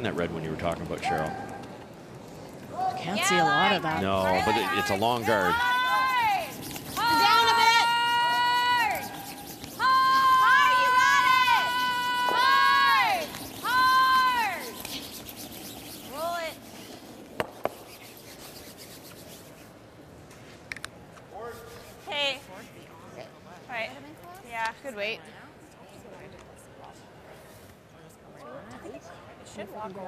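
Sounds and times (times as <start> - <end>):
person shouting sweeping calls: 2.8 - 16.6
curling stones clacking: 4.3 - 18.7.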